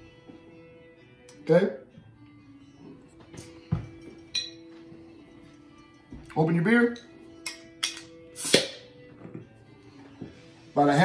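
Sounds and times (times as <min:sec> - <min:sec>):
bottle cap pop and gas hiss: 0:07.5 - 0:08.9.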